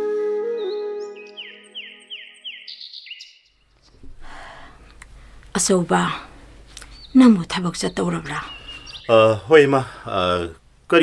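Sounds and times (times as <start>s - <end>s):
flute music: 0.0s - 2.7s
bird chirping: 0.6s - 4.0s, 6.8s - 9.7s
faint low hiss: 3.6s - 11.0s.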